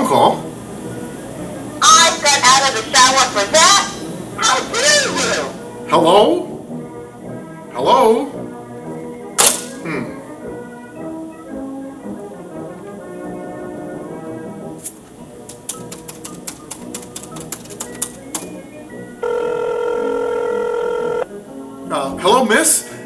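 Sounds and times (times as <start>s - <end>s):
soft background music: 0.0s - 23.0s
telephone keypad buttons clicking: 15.5s - 18.6s
telephone ringing tone: 19.2s - 21.3s.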